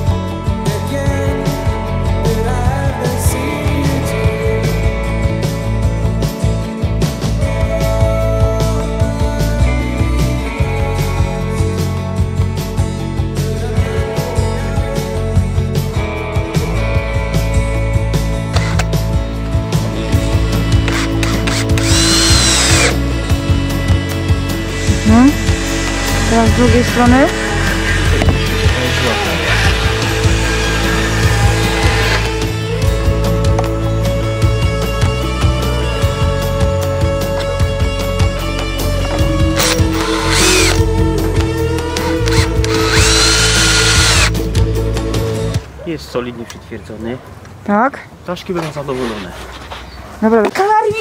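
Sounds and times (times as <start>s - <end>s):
guitar music: 0.0s - 45.6s
cordless drill whining: 18.5s - 18.9s, 20.4s - 32.7s, 39.0s - 44.4s.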